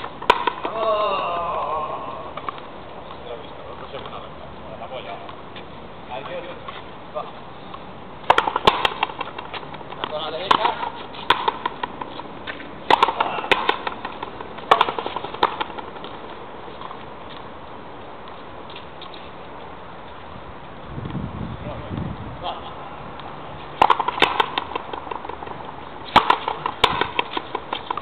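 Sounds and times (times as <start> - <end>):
racket strokes: 0.0 - 0.7, 7.7 - 20.2, 23.1 - 28.0
ball cracking off a wall: 0.0 - 0.9, 12.9 - 15.8, 23.8 - 25.5, 26.1 - 27.5.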